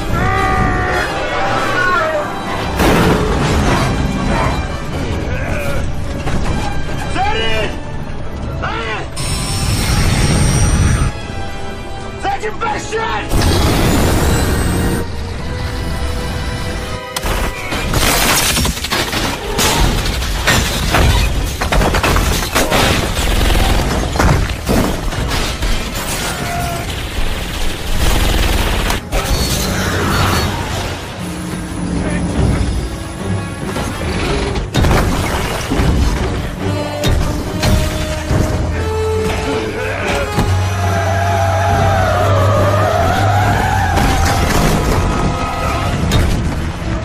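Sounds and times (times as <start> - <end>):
music: 0.0 - 47.0
crashing metal and debris: 17.2 - 27.8, 33.6 - 40.6.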